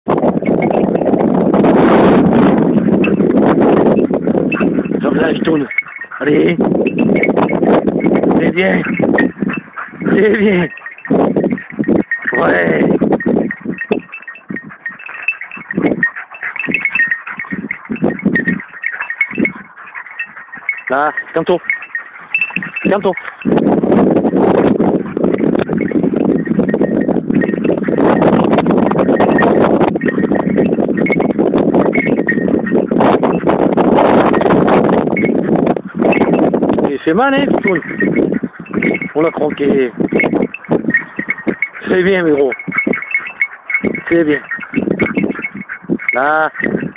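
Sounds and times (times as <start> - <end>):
dogs growling: 2.2 - 34.4, 35.1 - 46.9.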